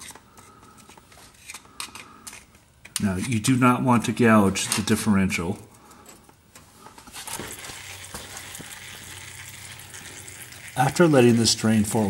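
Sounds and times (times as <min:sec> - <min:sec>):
oil trickling: 0:07.2 - 0:12.0.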